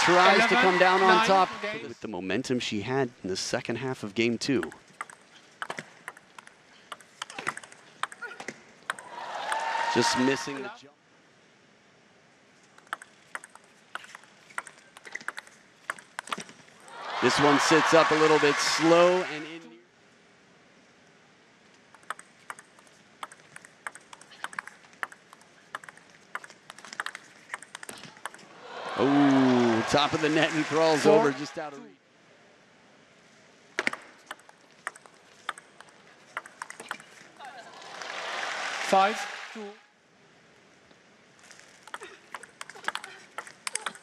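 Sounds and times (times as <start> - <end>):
table tennis ball hits: 4.6 - 9.6, 12.8 - 16.6, 22.0 - 28.4, 33.8 - 37.0, 41.9 - 44.0.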